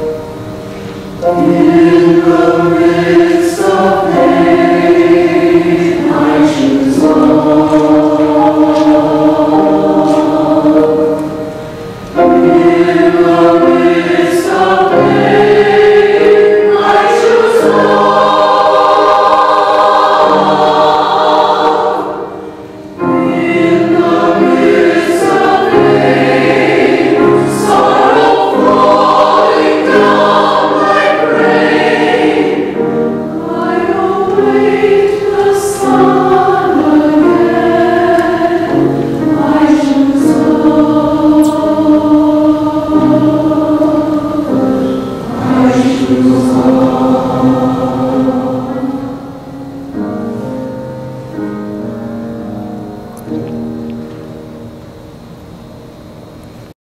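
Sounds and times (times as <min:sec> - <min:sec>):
mixed choir singing anthem: 0:00.0 - 0:50.8.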